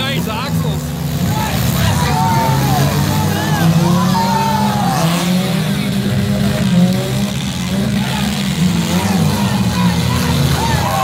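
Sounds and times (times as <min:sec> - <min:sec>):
car engines revving: 0:00.0 - 0:11.0.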